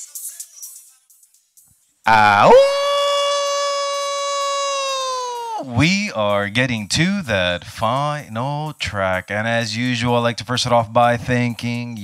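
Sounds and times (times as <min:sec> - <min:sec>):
man yelling into microphone: 0:02.1 - 0:07.0.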